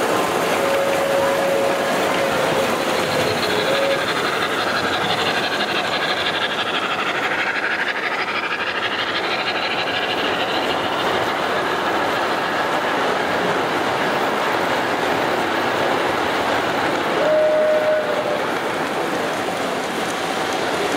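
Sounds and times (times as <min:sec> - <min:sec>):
model train wheels clattering: 0:00.0 - 0:13.0.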